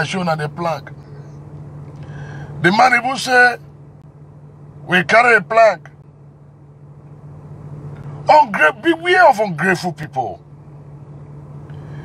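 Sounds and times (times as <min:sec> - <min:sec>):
car engine hum inside cabin: 0:00.0 - 0:12.0.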